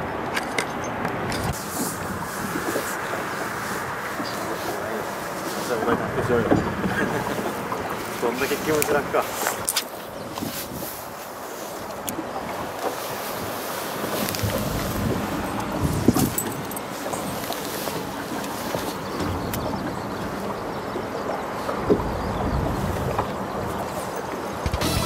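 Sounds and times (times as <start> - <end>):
wind buffeting microphone: 0.0 - 24.8.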